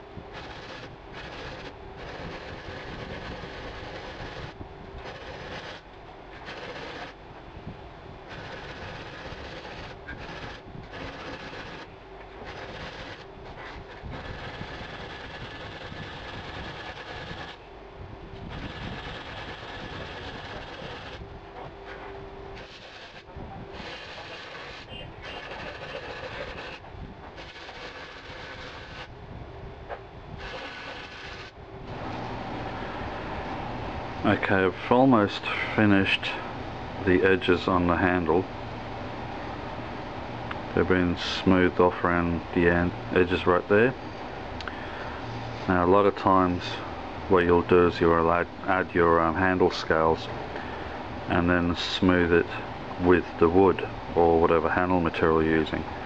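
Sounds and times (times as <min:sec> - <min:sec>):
rasping of metal being abraded: 0:23.8 - 0:26.8.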